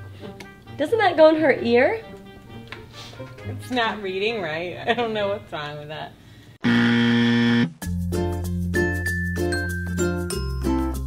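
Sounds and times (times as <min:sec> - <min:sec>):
buzzer sound effect: 0:06.6 - 0:07.7.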